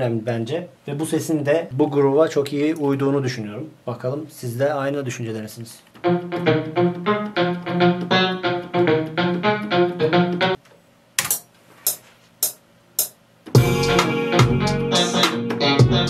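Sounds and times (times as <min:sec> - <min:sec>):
plucked electric guitar notes: 0:06.0 - 0:10.6, 0:13.6 - 0:16.0
beat with deep bass: 0:12.4 - 0:16.0.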